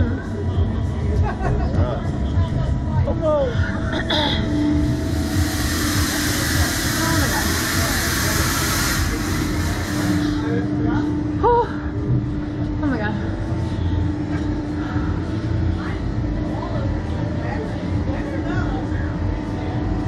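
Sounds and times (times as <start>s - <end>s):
amusement ride machinery hum: 0.0s - 20.0s
hiss: 4.7s - 10.6s.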